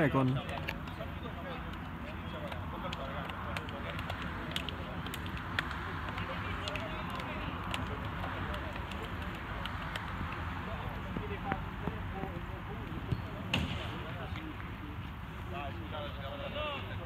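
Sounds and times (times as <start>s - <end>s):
players calling and chatting: 0.0s - 17.0s.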